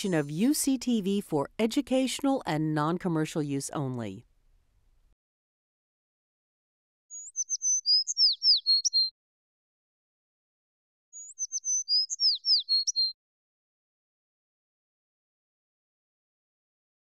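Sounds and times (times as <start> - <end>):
songbird chirps and whistles: 7.1 - 9.1, 11.1 - 13.2.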